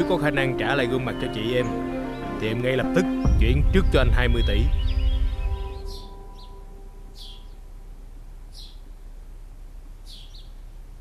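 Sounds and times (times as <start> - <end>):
held music chord: 0.0 - 9.0
high bird chirps: 3.0 - 7.8, 8.5 - 8.9
low background hum: 3.2 - 11.0.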